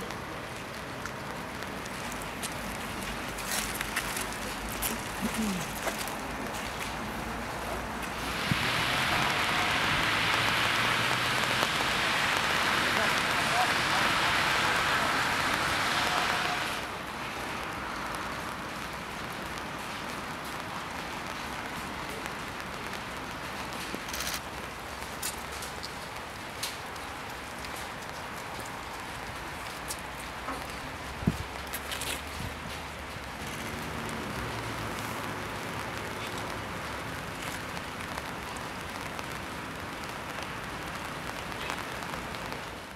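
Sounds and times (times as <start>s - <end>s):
rain on wet pavement: 0.0s - 42.9s.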